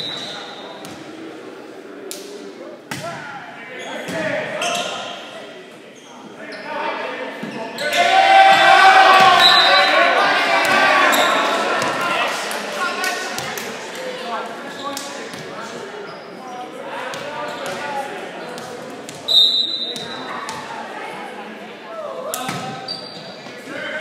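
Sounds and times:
crowd shouting and cheering: 7.0s - 15.3s.

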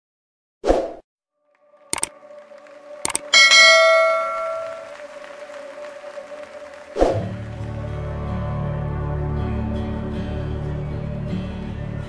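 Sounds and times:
quick double clicks: 1.9s - 2.2s, 3.0s - 3.3s
bright bell ding: 3.1s - 5.0s.

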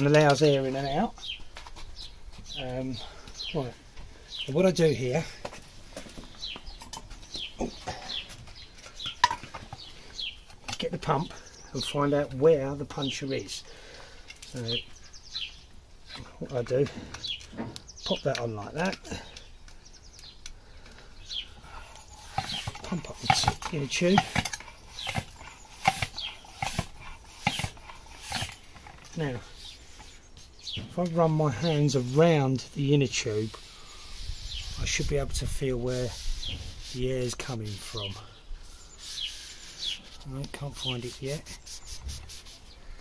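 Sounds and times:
small bird chirping: 0.0s - 5.2s, 6.3s - 43.0s
bicycle pump air strokes: 21.6s - 30.6s, 33.4s - 35.0s, 35.8s - 43.0s.

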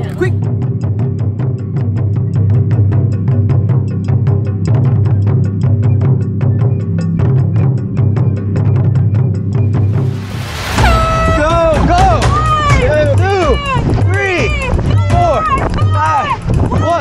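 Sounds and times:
background music with fast drum beat: 0.0s - 10.2s, 10.8s - 17.0s.

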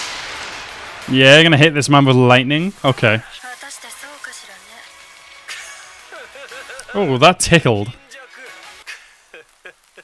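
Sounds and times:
background music: 1.0s - 9.8s
character speaking: 1.1s - 4.9s, 6.8s - 8.8s.

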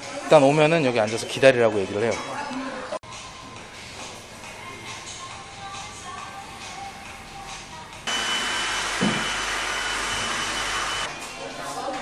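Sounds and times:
hair dryer running: 8.1s - 11.1s.

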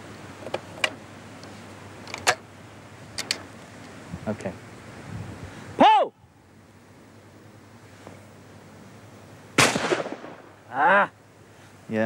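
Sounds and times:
shotgun shot: 9.6s - 10.6s.

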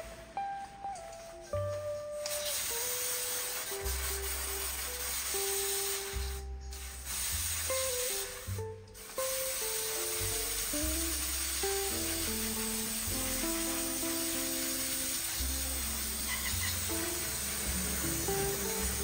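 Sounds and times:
calm background music: 0.0s - 19.0s
aerosol can spraying: 2.2s - 19.0s.

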